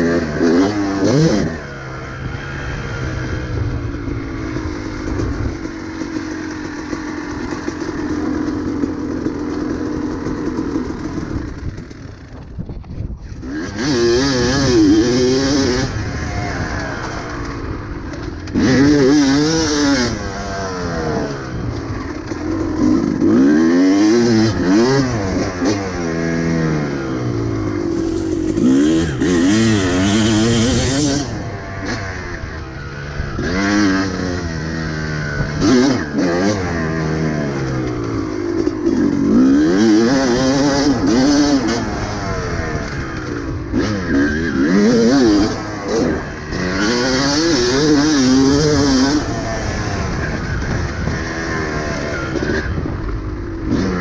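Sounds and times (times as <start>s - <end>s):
dirt bike engine revving: 0.0s - 12.6s, 13.2s - 54.0s.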